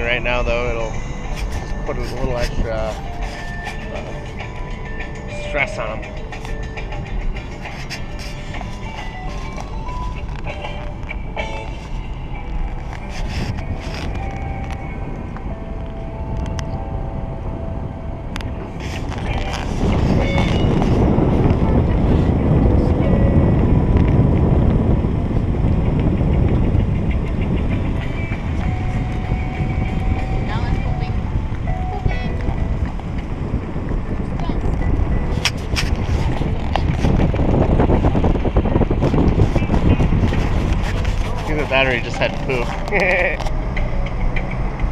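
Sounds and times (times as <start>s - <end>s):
car road and wind noise: 0.0s - 44.9s
music playing in a car: 0.0s - 44.9s.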